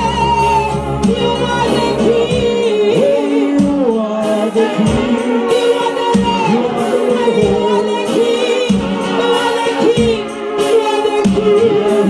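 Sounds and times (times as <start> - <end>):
band playing low notes: 0.0 - 12.0
choir voices singing: 0.0 - 12.0
woman singing gospel: 0.0 - 12.0.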